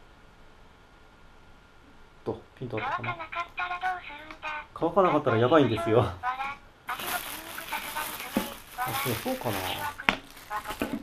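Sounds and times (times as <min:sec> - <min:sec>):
plastic bag rustling: 0:06.9 - 0:11.0.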